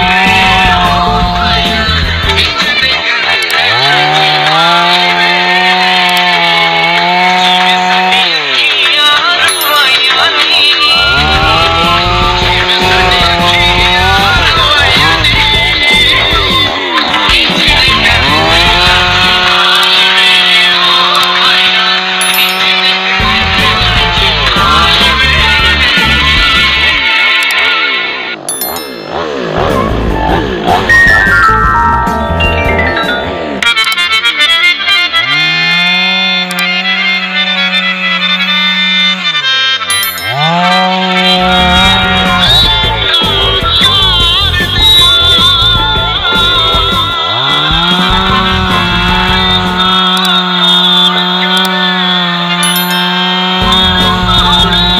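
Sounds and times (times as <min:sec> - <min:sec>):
background music: 0:00.0 - 0:02.9, 0:10.9 - 0:20.2, 0:22.2 - 0:27.0, 0:29.6 - 0:34.2, 0:40.0 - 0:50.1
chainsaw cutting log: 0:00.0 - 0:27.7, 0:33.7 - 0:54.9.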